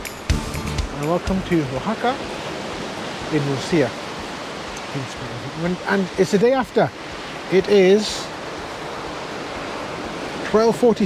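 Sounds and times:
small waves breaking on beach: 1.0 - 11.0.

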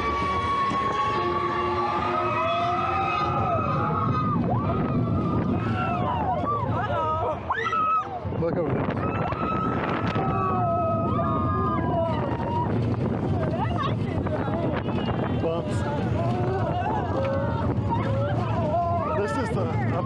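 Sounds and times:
riders whooping and screaming: 0.0 - 8.3, 8.9 - 15.2, 15.8 - 19.9
roller coaster track noise: 0.0 - 20.0
wind: 0.0 - 20.0.

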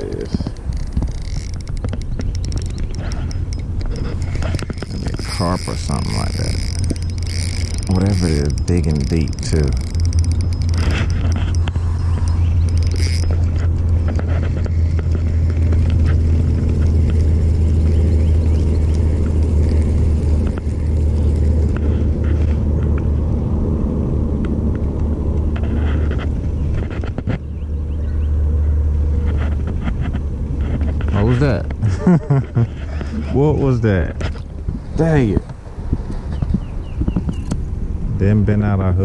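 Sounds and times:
faint clicks: 0.0 - 21.9
steady low rumble: 0.0 - 39.0.

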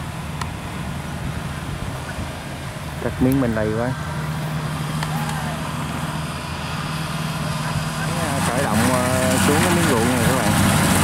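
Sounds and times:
diesel engine humming: 0.0 - 11.0.

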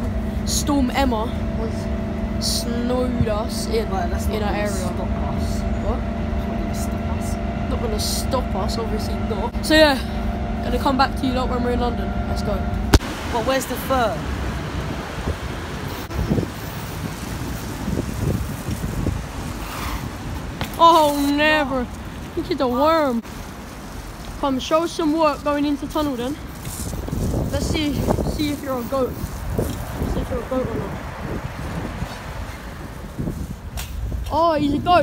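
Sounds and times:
wind buffeting microphone: 0.0 - 23.2, 24.0 - 35.0
city street noise rumble: 0.0 - 35.0
bicycle tyres rolling on wet tarmac: 6.6 - 34.3
wind on microphone: 14.3 - 20.7, 25.9 - 35.0.

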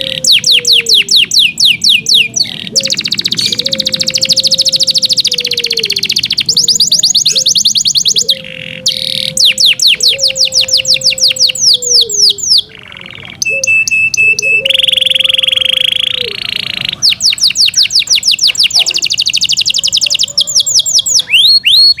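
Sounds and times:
canary singing: 0.0 - 22.0.

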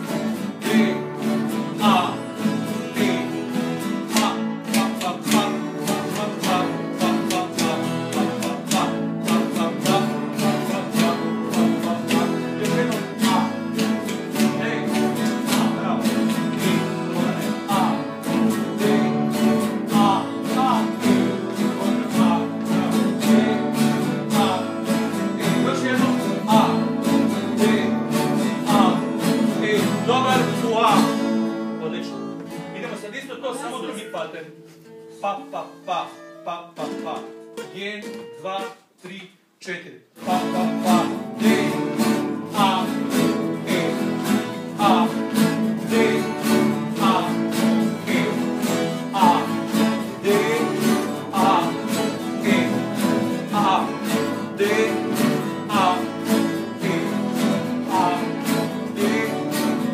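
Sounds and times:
guitars strumming chords together: 0.0 - 38.9, 40.2 - 59.9.

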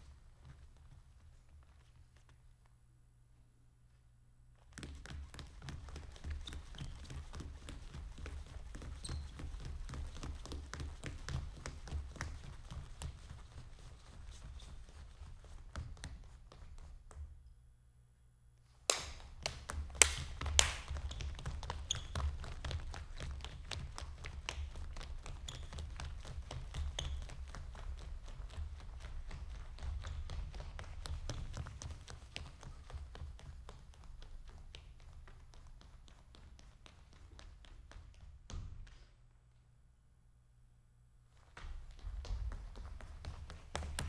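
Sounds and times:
sneakers stepping on stage floor: 4.6 - 17.4, 18.9 - 39.3, 41.3 - 44.0.

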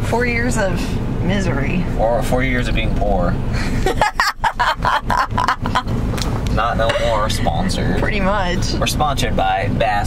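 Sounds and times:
woman laughing hard: 3.6 - 5.9.

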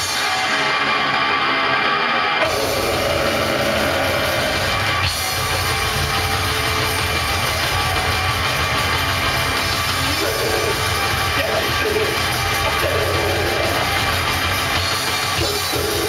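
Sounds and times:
distorted electric guitar chords: 0.0 - 16.0
drums: 0.0 - 16.0
heavy metal band playing live: 0.0 - 16.0.

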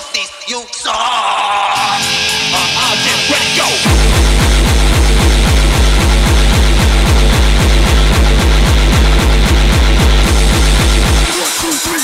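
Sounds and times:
distorted kick drum: 1.8 - 11.8
harsh noise layer: 1.8 - 11.8.

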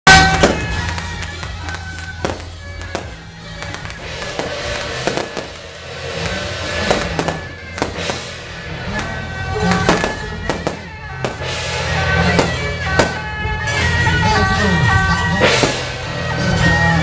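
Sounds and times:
firecrackers popping: 0.1 - 13.7, 15.4 - 16.4
band wind instruments: 0.1 - 17.0
low drone: 0.7 - 17.0.

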